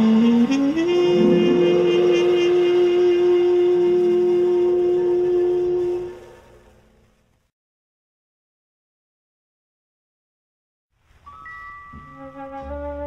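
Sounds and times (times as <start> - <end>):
jazz orchestra held chord: 0.0 - 6.2.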